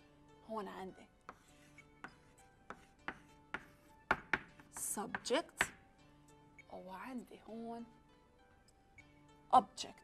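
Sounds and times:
chalk tapping on blackboard: 1.3s - 5.8s.

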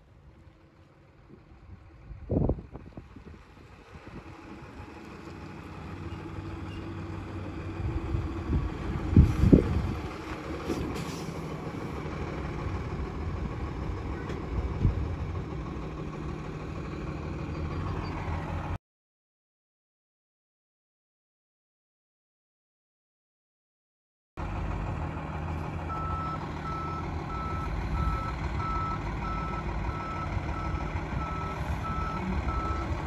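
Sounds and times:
diesel truck engine running: 0.0s - 18.8s, 24.4s - 33.0s.

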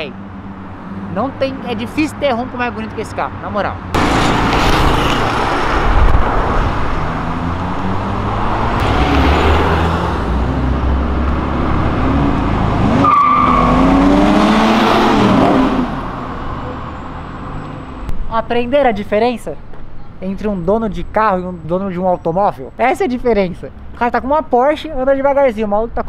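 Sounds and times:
car engines revving: 0.0s - 18.2s
cars driving past: 0.0s - 18.2s.

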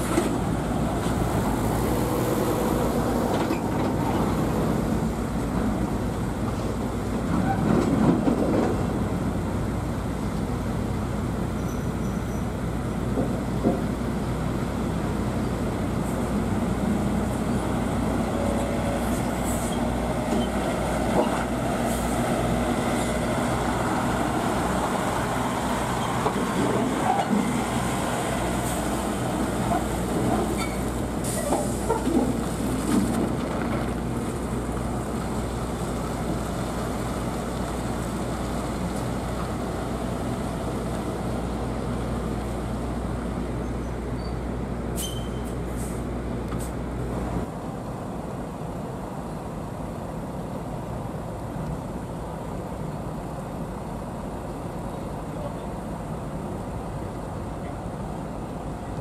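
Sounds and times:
diesel truck engine drone: 0.0s - 59.0s
trailer clanks and rattles: 2.6s - 9.3s, 11.6s - 14.1s, 18.2s - 41.4s.

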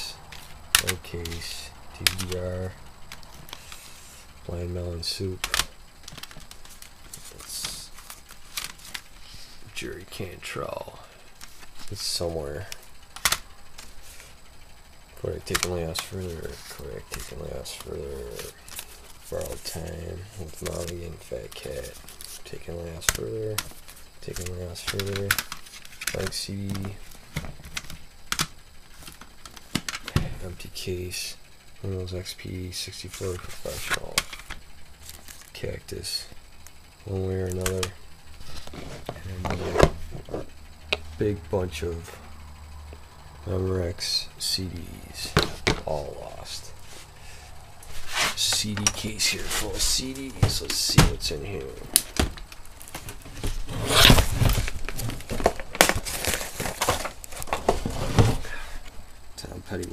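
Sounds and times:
plastic cd cases clacking: 0.3s - 2.5s, 3.1s - 3.8s, 5.3s - 9.2s, 11.4s - 14.3s, 15.3s - 30.3s, 33.0s - 35.6s, 48.3s - 58.5s
plastic crinkling and rustling: 33.2s - 35.6s, 51.9s - 58.6s.

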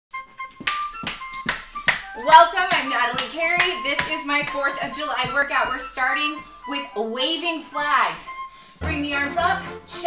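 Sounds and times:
light background music: 0.2s - 10.0s
hand claps: 0.5s - 4.7s.

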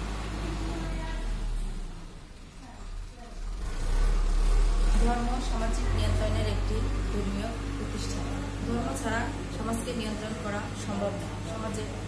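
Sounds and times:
woman speaking: 4.9s - 12.0s.

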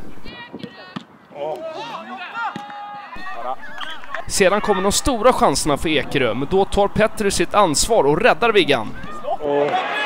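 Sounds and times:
people shouting and calling: 0.3s - 10.0s.

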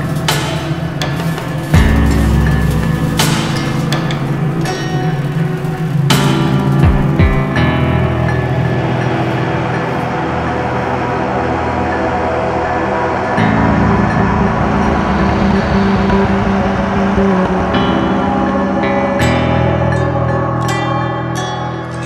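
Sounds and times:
music of held low chords: 0.0s - 22.0s.

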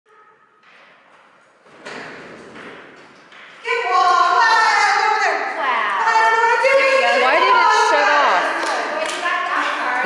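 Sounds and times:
woman calling to a dog: 6.0s - 8.5s.

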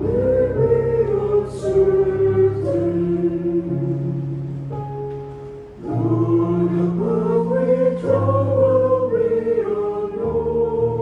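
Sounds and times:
church choir singing a hymn: 0.0s - 4.5s, 5.8s - 11.0s.

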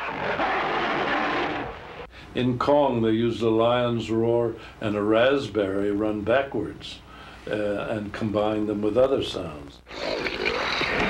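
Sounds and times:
dinosaur roar: 0.0s - 2.1s, 9.9s - 11.0s.

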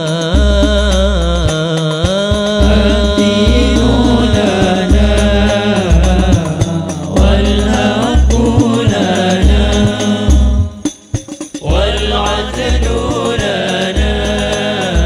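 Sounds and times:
frame drums beating: 0.0s - 15.0s
men singing together: 0.0s - 15.0s.

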